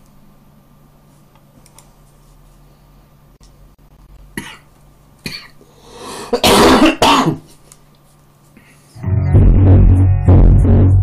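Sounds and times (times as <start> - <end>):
man coughing: 6.3 - 7.5.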